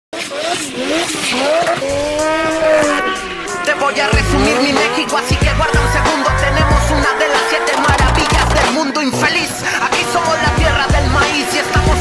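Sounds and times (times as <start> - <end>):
car engine revving hard: 0.2 - 8.7
tyres squealing: 0.2 - 12.0.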